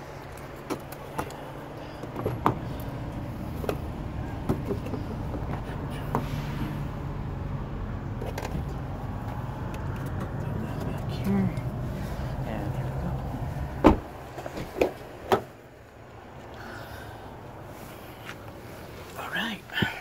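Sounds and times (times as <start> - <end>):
car door opening: 13.8 - 15.5.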